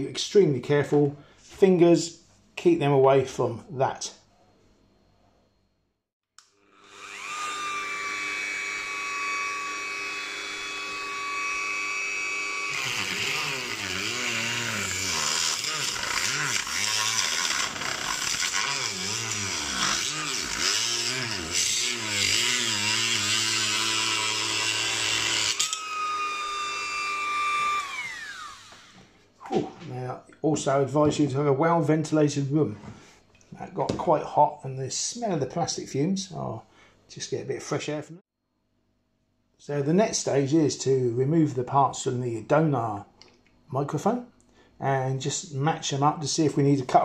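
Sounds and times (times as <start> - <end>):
rotary tool cutting plastic: 6.4 - 29.0
rotary tool whining: 6.4 - 29.2.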